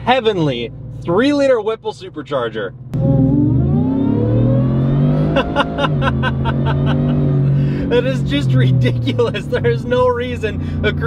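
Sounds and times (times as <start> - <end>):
supercharger whine: 2.8 - 11.0
engine accelerating at full throttle: 2.9 - 11.0.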